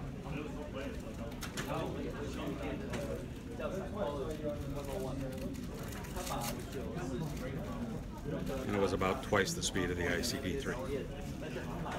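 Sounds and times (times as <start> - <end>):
background chatter of voices: 0.0 - 11.9.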